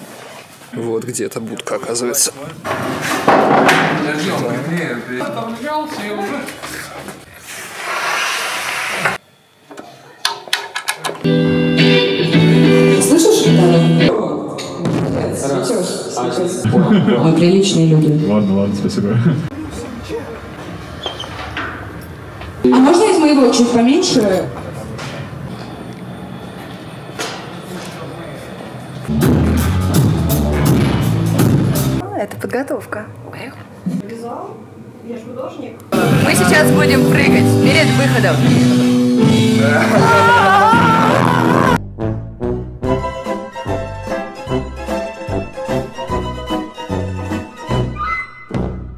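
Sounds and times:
heavy bass beat: 0:29.1 - 0:32.0, 0:36.0 - 0:43.0.

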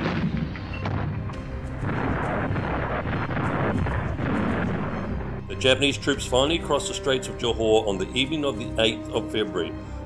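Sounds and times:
sharp explosion cracks: 0:00.0 - 0:06.1
artillery shell explosions: 0:00.0 - 0:06.8
background music: 0:00.0 - 0:10.0.

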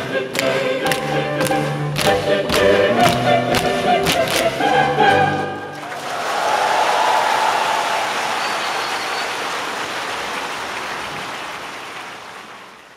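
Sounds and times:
audience applauding: 0:05.7 - 0:12.9.

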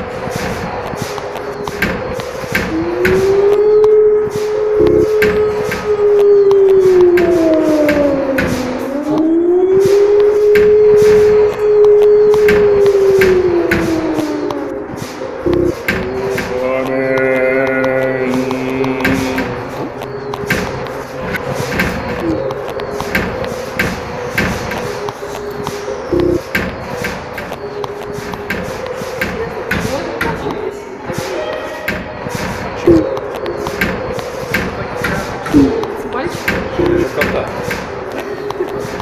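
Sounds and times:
gliding voice-like fragments: 0:00.0 - 0:39.0
held drone: 0:00.0 - 0:39.0
sharp clicks and knocks: 0:00.0 - 0:39.0.

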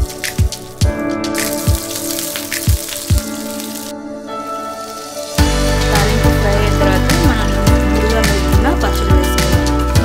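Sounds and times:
spices sizzling in hot oil: 0:00.0 - 0:09.8
background music with steady beat: 0:00.0 - 0:10.0.

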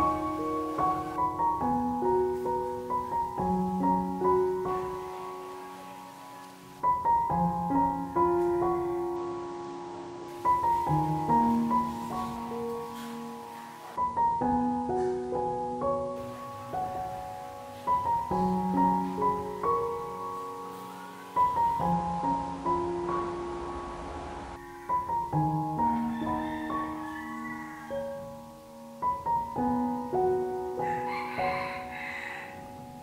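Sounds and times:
soft piano music: 0:00.0 - 0:33.0.

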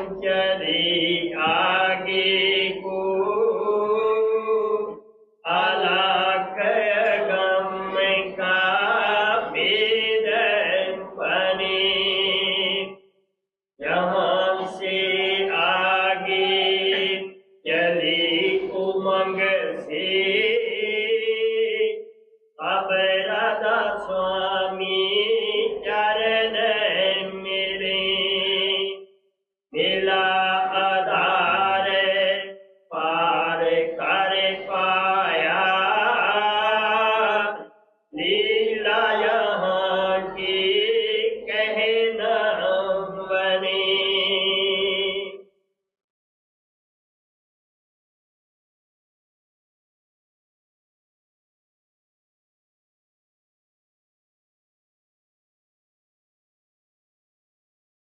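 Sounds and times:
person chanting a hymn: 0:00.0 - 0:12.9, 0:13.8 - 0:22.0, 0:22.6 - 0:29.0, 0:29.8 - 0:45.4.

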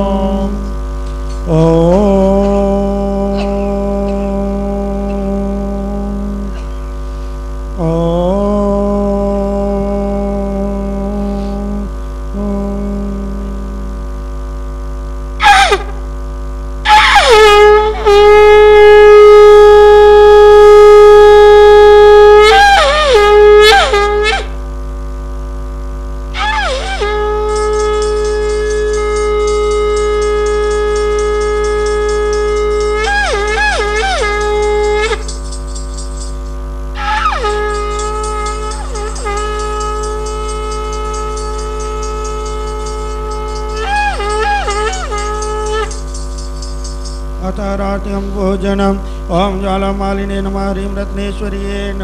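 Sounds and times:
conch shell blown: 0:00.0 - 0:52.0.

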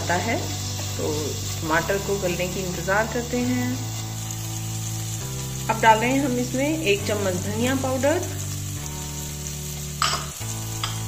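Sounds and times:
vegetables sizzling in a pan: 0:00.0 - 0:11.0
spoon scraping a pan: 0:09.6 - 0:11.0.

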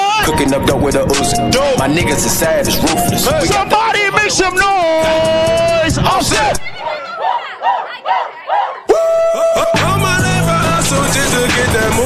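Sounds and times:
club music with loud hit: 0:00.0 - 0:06.6, 0:09.2 - 0:12.0
crowd shouting in bursts: 0:06.2 - 0:08.9.

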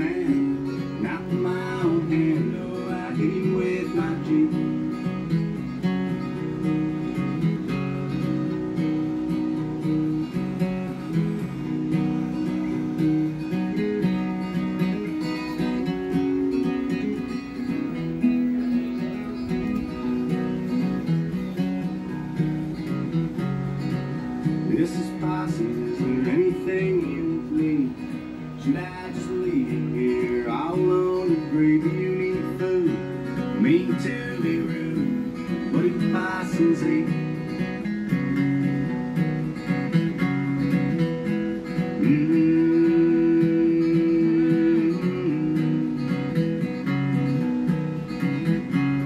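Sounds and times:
acoustic guitar strumming chords: 0:00.0 - 0:49.0.

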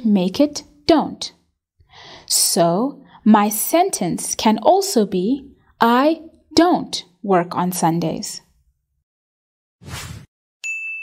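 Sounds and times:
short whoosh: 0:09.8 - 0:10.3
bright metallic ding: 0:10.6 - 0:11.0.

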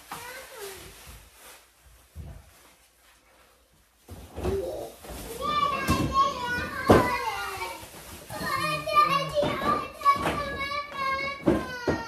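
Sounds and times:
children squealing and babbling: 0:05.3 - 0:12.0.

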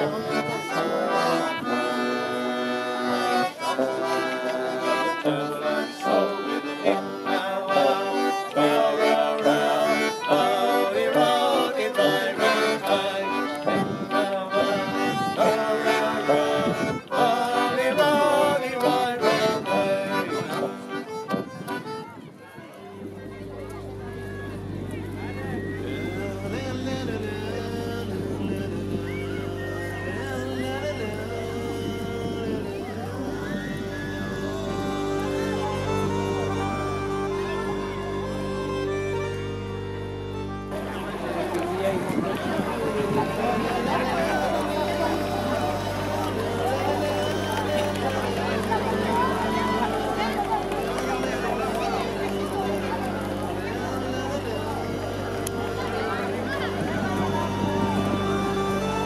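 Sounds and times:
small band playing: 0:00.0 - 0:22.2, 0:23.3 - 0:59.0
button accordion tune: 0:00.0 - 0:59.0
low hum: 0:23.0 - 0:59.0.

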